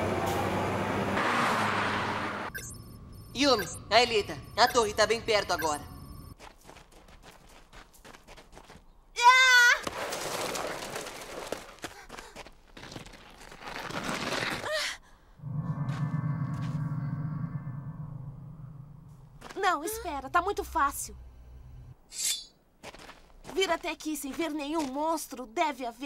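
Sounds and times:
loud warbling tone: 15.4 - 19.4
rushing noise: 15.4 - 19.4
steady low hum: 15.4 - 22.0.

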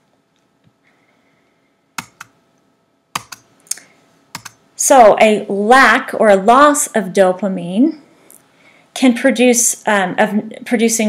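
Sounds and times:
keyboard keys clicking: 2.0 - 2.3, 3.2 - 3.5, 4.4 - 4.6.

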